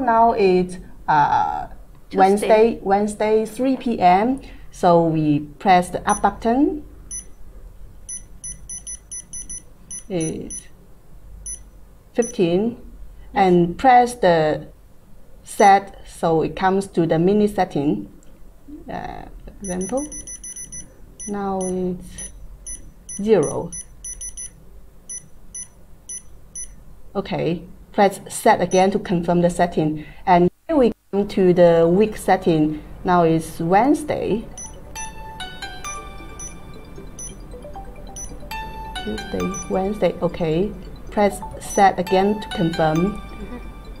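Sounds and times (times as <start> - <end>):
controller beeping: 6.1 - 6.3, 7.1 - 7.3, 8.1 - 10.7, 19.6 - 24.5, 34.5 - 44.0
short high beeps: 7.1 - 7.4, 8.1 - 10.7, 19.6 - 26.8, 34.6 - 35.1, 35.9 - 36.6, 37.2 - 37.4.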